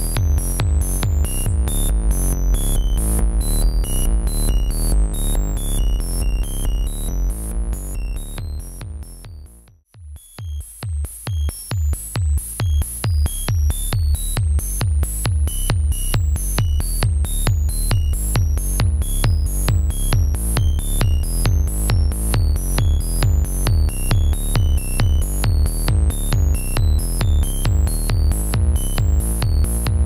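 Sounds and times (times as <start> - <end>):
square-wave bass: 0.0 - 30.0
synthesizer kick drum: 0.0 - 30.0.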